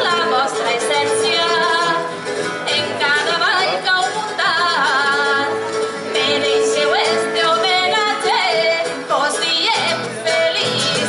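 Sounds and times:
person singing with vibrato: 0:00.0 - 0:11.0
plucked strings: 0:00.0 - 0:11.0.

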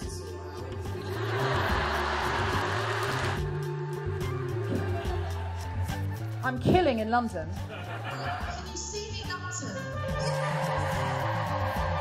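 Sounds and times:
music with steady bass line: 0:00.0 - 0:12.0
audience applauding and cheering: 0:01.0 - 0:06.3, 0:10.3 - 0:12.0.

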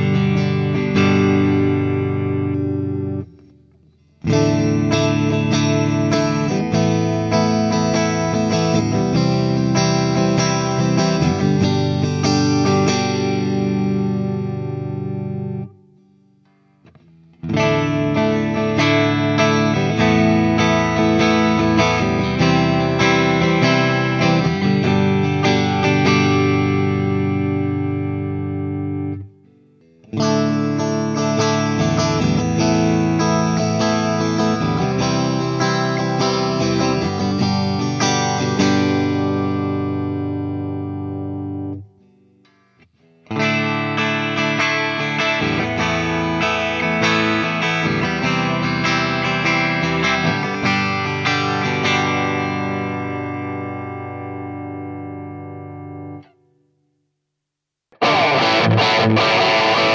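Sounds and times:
electric guitar through amp: 0:00.0 - 0:56.5, 0:57.9 - 0:59.9.

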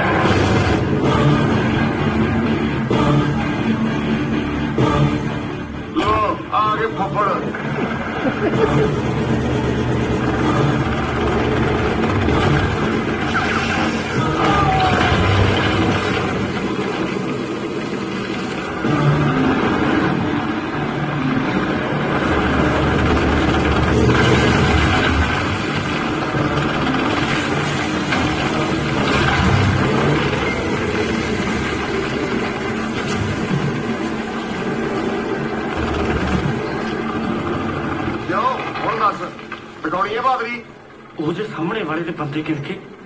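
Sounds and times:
car engine running: 0:14.9 - 0:38.6.

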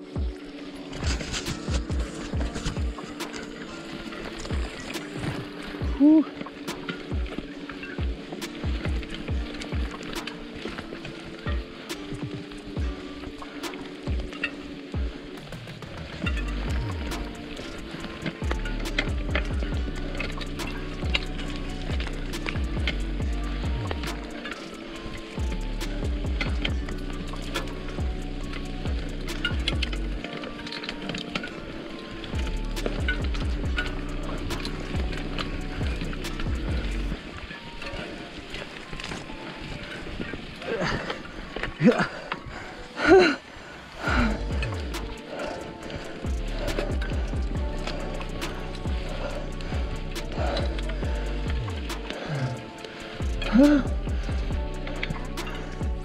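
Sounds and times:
background music with steady beat: 0:00.0 - 0:56.0
deep bass line: 0:16.3 - 0:17.4, 0:18.4 - 0:24.3, 0:25.4 - 0:30.2, 0:32.4 - 0:37.2, 0:44.1 - 0:45.2, 0:46.3 - 0:52.2, 0:53.2 - 0:56.0.

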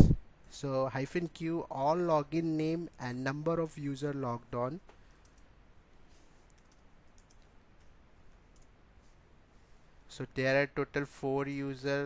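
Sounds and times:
faint keyboard keystrokes: 0:04.8 - 0:05.5, 0:06.4 - 0:08.8.

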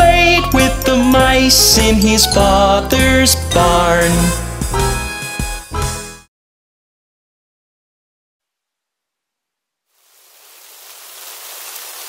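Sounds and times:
steady rain: 0:09.9 - 0:12.0.

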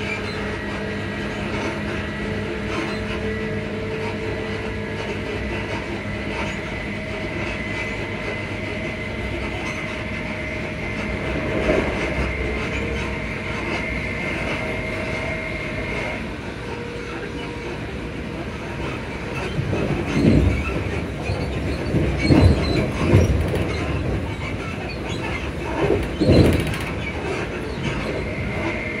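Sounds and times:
train clatter: 0:00.0 - 0:29.0
train traction motors whining: 0:00.0 - 0:29.0
train wheels rumbling: 0:00.0 - 0:29.0.

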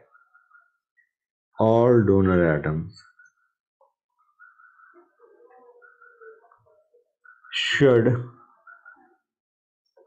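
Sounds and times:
faint wavering bird calls: 0:00.0 - 0:01.3, 0:03.0 - 0:09.4.

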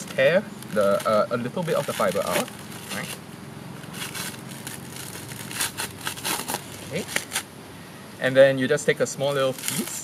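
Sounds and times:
coconut husk fibres ripping: 0:00.0 - 0:03.2, 0:03.8 - 0:07.5, 0:09.0 - 0:10.0.

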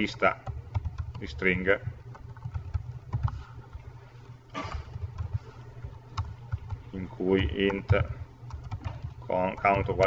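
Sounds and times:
steady low hum: 0:00.0 - 0:10.0
keyboard typing: 0:00.3 - 0:03.8, 0:04.7 - 0:10.0.

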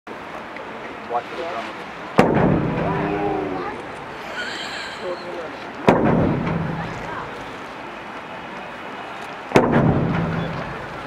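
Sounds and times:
large drum boom: 0:02.2 - 0:03.2, 0:05.9 - 0:06.9, 0:09.6 - 0:10.4.

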